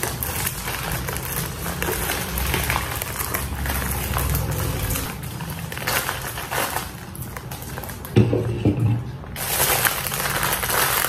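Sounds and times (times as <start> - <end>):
plastic bag crinkling and tearing: 0.0 - 8.2, 9.2 - 11.0.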